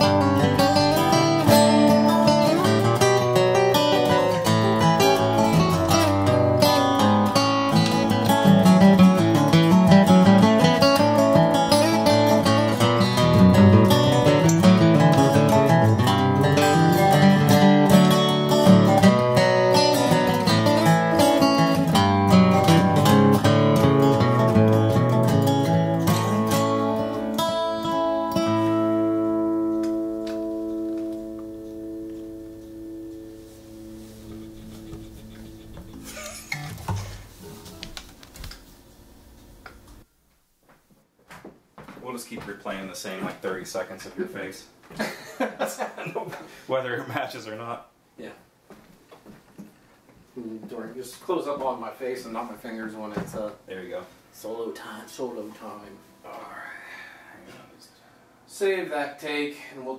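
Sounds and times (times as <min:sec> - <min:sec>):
acoustic guitar strumming: 0:00.0 - 0:38.5
resonator guitar: 0:00.0 - 0:40.1.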